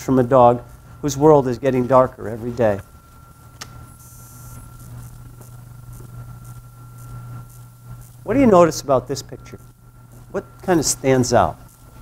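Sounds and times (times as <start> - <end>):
low electrical hum: 0.0 - 12.0
thin steady whine: 0.0 - 12.0
sharp click: 3.6 - 3.8.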